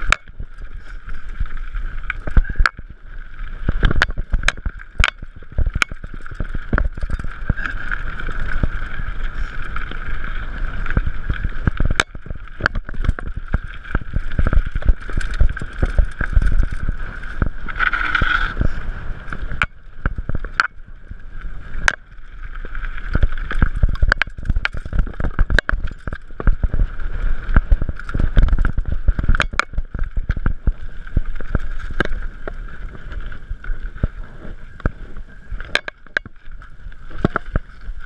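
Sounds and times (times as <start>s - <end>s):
mountain bike rattling over rocks: 0.0s - 38.0s.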